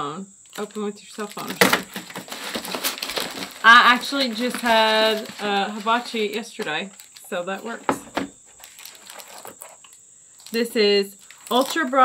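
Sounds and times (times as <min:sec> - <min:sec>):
packaging rustling and crinkling: 0:00.5 - 0:12.0.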